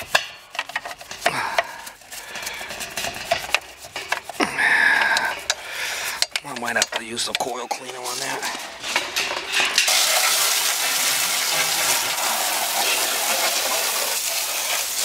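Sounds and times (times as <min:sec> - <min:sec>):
brush scrubbing sheet metal: 0:00.0 - 0:15.0.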